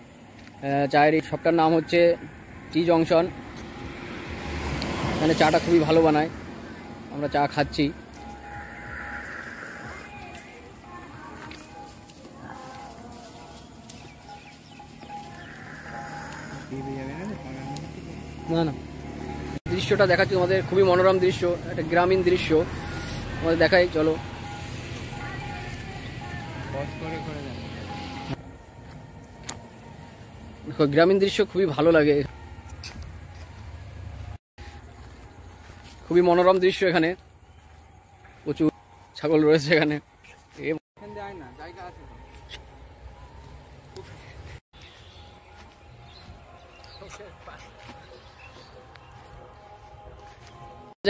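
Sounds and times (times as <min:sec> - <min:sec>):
road vehicle passing: 0:00.0 - 0:44.6.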